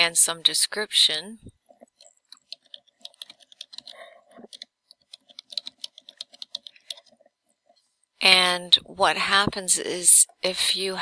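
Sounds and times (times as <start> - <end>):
computer keyboard typing: 1.8 - 7.2.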